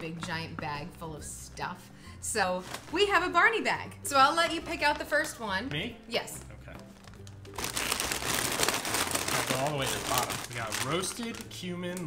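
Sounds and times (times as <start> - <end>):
plastic bags crinkling: 2.5 - 3.3, 7.0 - 12.0.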